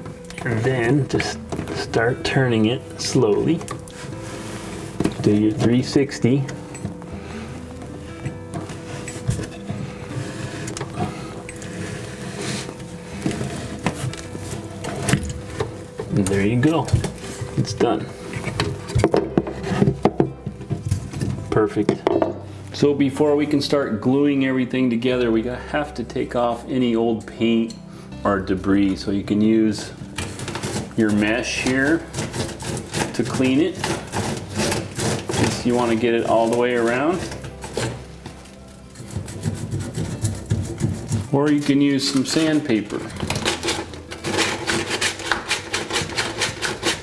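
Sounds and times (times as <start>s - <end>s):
cloth scrubbing plastic pipe: 30.3s - 38.1s, 38.9s - 47.0s.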